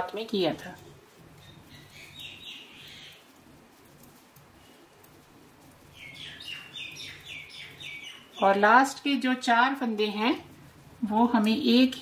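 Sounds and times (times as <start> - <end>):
faint low hum: 0.0 - 12.0
small bird chirping: 1.3 - 3.3, 5.9 - 8.7.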